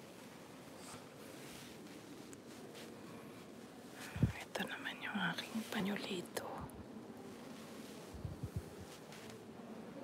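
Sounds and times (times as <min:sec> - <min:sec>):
person whispering: 0:04.0 - 0:06.7.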